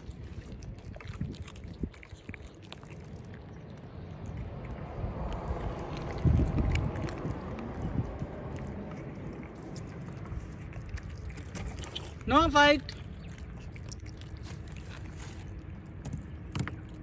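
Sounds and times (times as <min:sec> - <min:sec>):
cats chewing: 0:00.0 - 0:17.0
wind rumbling on microphone: 0:00.0 - 0:17.0.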